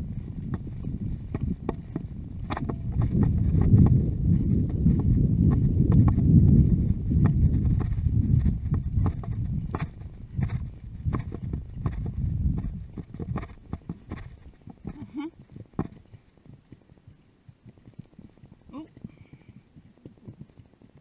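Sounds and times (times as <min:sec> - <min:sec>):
low rumble: 0:00.0 - 0:20.8
horse hooves clopping on grass: 0:00.0 - 0:21.0.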